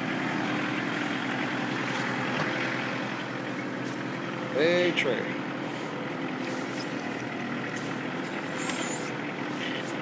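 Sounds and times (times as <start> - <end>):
tractor diesel engine under load: 0.0 - 10.0.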